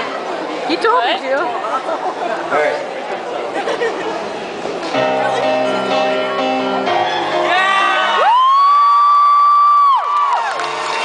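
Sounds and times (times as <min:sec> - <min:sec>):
faint crowd noise: 0:00.0 - 0:11.0.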